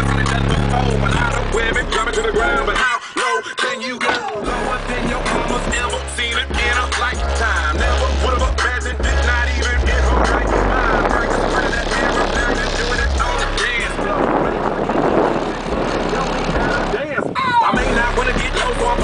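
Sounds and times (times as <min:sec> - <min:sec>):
heavy subwoofer bass: 0:00.0 - 0:19.0
hip-hop song from car stereo: 0:00.0 - 0:19.0.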